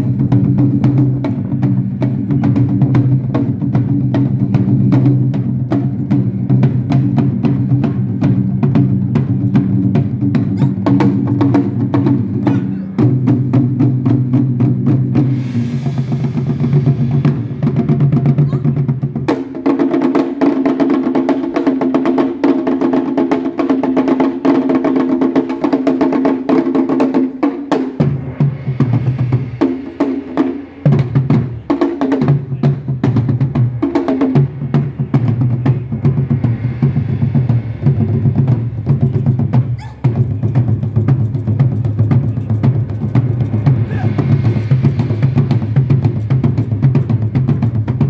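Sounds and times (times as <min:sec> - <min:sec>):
taiko drums: 0:00.0 - 0:48.0.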